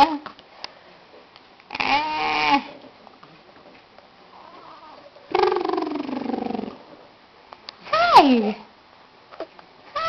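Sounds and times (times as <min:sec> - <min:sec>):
baby cooing: 0:04.6 - 0:06.8.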